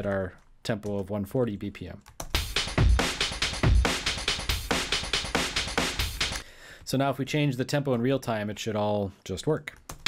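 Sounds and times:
chopped drum breakbeat: 2.3 - 6.4.

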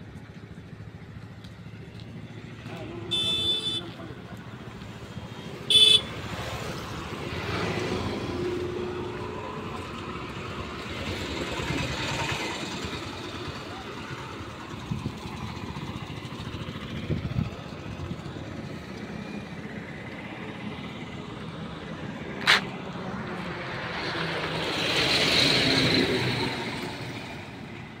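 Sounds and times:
highway traffic passing: 0.0 - 28.0.

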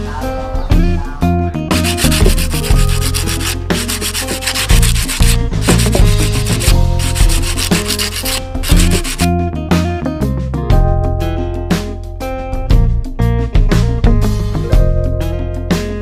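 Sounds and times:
background music: 0.0 - 16.0
abrasive pad scraping cement: 1.8 - 9.3.

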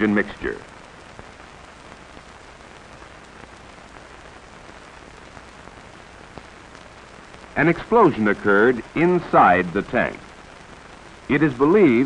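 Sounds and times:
faint crackles: 0.0 - 12.0
steady hiss: 0.0 - 12.0.

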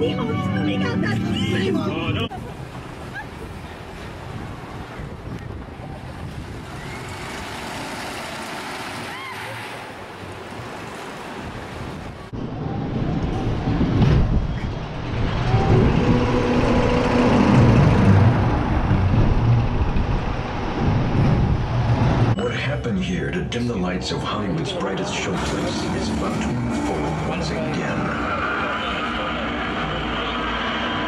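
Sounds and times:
roller coaster rumble and rattle: 2.1 - 22.5, 23.2 - 31.0.

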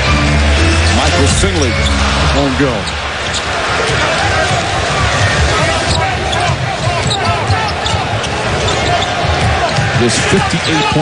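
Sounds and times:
crowd noise: 0.0 - 11.0
sneakers squeaking on court: 5.9 - 10.0.

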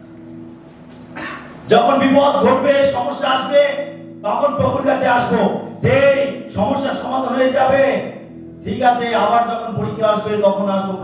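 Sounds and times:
man preaching through microphone: 1.7 - 11.0.

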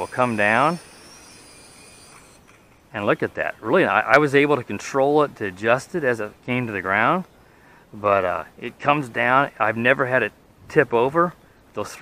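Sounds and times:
toy drone motors whining: 0.0 - 2.9.

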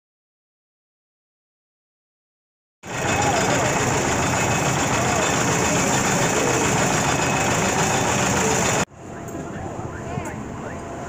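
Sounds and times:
indistinct voices: 2.9 - 11.0.

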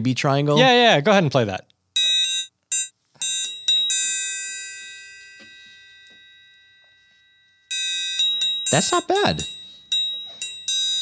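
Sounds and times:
triangle strikes ringing: 2.0 - 11.0.

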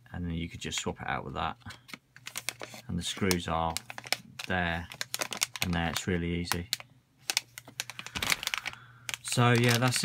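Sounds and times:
plastic bag crinkling: 1.6 - 10.0.

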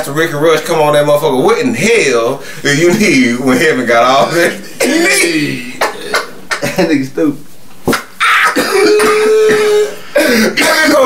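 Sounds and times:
man coughing hard: 4.4 - 6.9, 8.3 - 10.8.

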